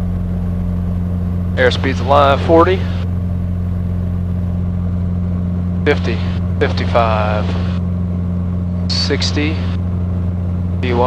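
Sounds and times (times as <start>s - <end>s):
airplane engine and propeller drone: 0.0s - 11.0s.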